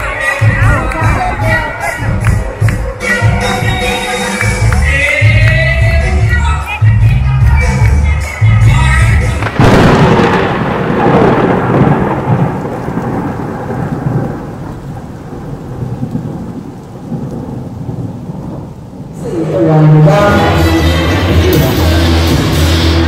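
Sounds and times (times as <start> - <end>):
music: 0.0 - 9.6, 19.2 - 23.0
loud rumbling crash: 9.4 - 14.3.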